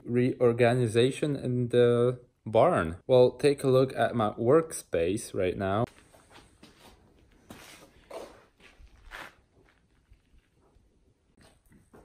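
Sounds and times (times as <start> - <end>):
shoe scuffs: 5.9 - 10.7
footsteps on concrete: 5.9 - 12.0.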